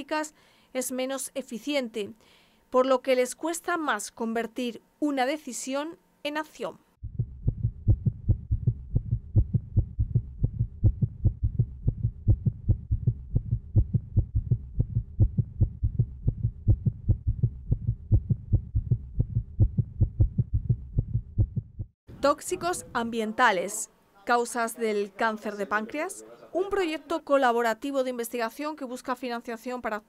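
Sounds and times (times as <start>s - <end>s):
doppler heartbeat pulses: 7.0s - 22.0s.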